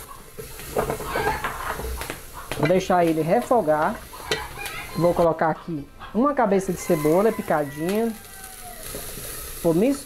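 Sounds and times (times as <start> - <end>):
garlic sizzling in fat: 0.0 - 5.4, 6.5 - 10.0.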